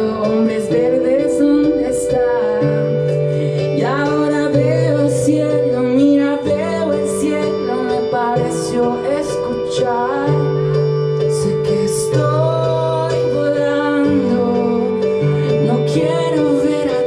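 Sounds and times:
electric keyboard chords: 0:00.0 - 0:17.0
man singing into microphone: 0:11.2 - 0:17.0.

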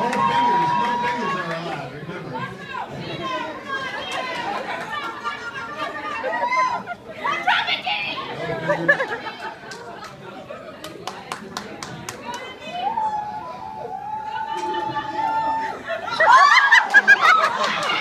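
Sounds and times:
people chattering and calling out: 0:00.0 - 0:18.0
long drawn-out shout: 0:12.7 - 0:17.6.

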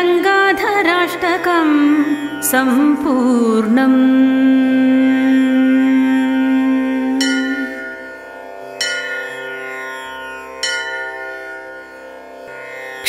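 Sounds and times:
held note: 0:05.6 - 0:09.2
struck bell tones: 0:07.1 - 0:12.6.

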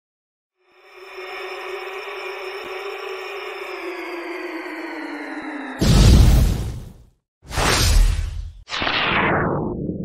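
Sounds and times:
synthetic drone: 0:00.5 - 0:06.7.

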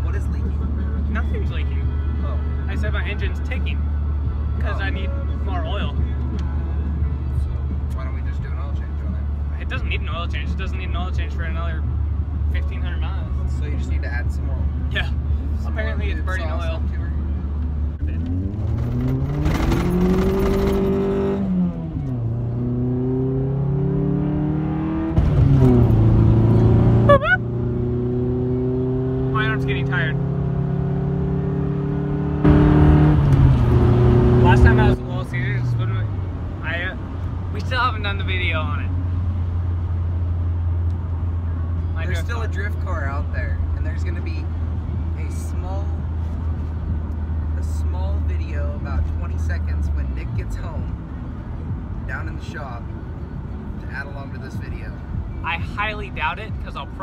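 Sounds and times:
car engine revving from inside: 0:18.0 - 0:35.1.

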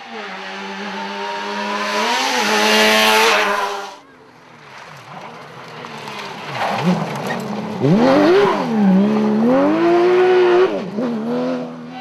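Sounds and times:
distant rally car revving: 0:00.0 - 0:04.0, 0:04.7 - 0:12.0
rally car passing at high revs: 0:00.0 - 0:04.0, 0:04.6 - 0:12.0.

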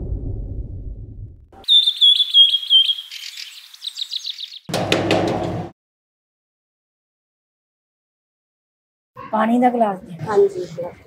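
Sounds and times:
low rumble: 0:00.0 - 0:01.6
songbird chirping and trilling: 0:01.6 - 0:04.7.

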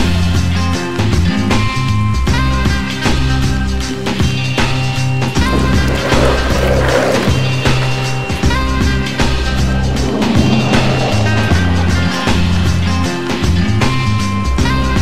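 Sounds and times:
skateboard wheels rolling on asphalt: 0:01.6 - 0:14.6.

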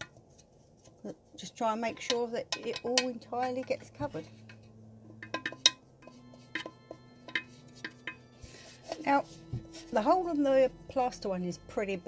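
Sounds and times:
scratchy brushing: 0:06.0 - 0:10.4.

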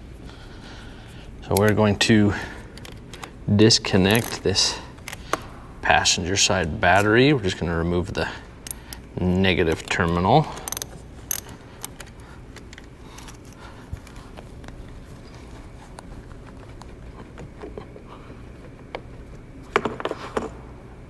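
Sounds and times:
metallic clicks and rattles: 0:08.6 - 0:15.0.

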